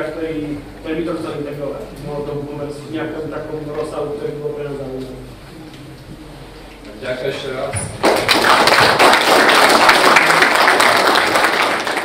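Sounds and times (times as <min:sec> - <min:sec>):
audience applauding: 0:08.0 - 0:12.0.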